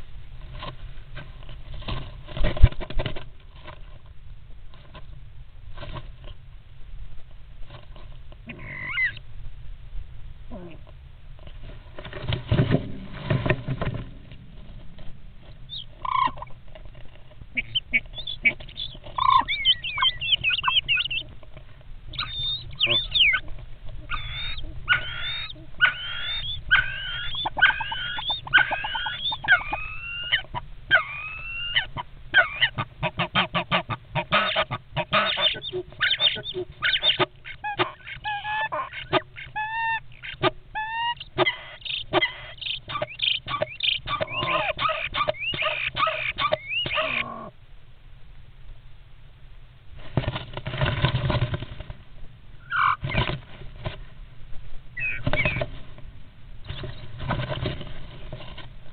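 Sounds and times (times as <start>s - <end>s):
starlings squawking: 8.5s - 9.2s, 15.7s - 16.5s, 17.5s - 21.3s, 22.1s - 32.8s, 33.7s - 47.5s, 52.6s - 53.2s, 55.0s - 55.7s
whistled bird calls: 8.6s - 9.2s, 15.7s - 16.4s, 17.6s - 21.3s, 22.1s - 32.7s, 35.1s - 47.3s, 55.0s - 55.6s.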